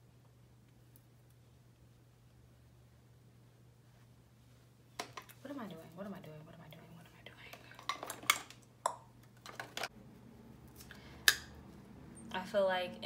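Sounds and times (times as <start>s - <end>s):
faint low hum: 0.0s - 13.0s.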